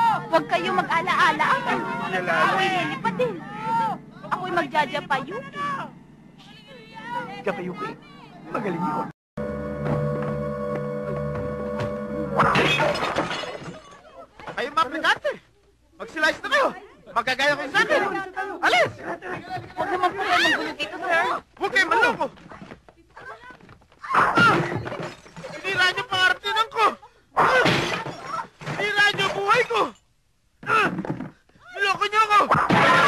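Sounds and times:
film soundtrack music with beat: 9.4 - 12.4
loud shattering crash: 12.4 - 14.0.

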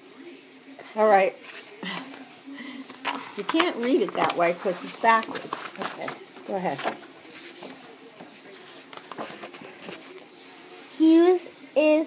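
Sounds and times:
room hiss: 0.0 - 12.0
book rustling: 1.4 - 10.6.

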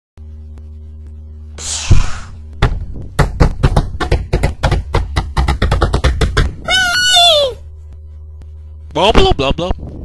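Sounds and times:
fast drumming: 2.6 - 6.9.

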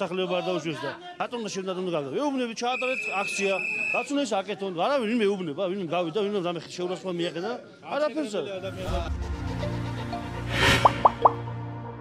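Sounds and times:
rising electronic plops: 10.6 - 11.6.

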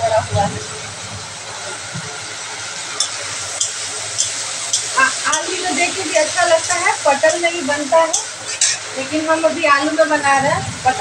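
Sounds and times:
prawns sizzling in oil: 0.0 - 11.0
metal spatula knocking pan: 3.0 - 5.6.

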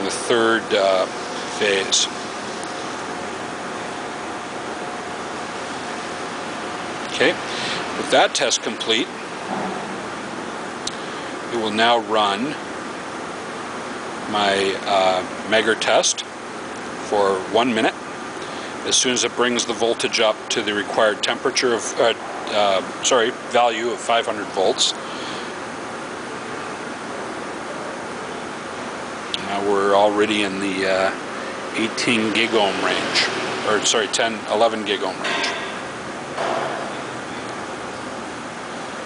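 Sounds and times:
fan-like background hiss: 0.0 - 39.0.

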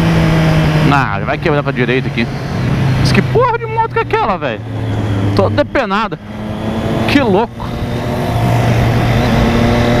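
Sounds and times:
motorcycle engine cruising: 0.0 - 10.0.

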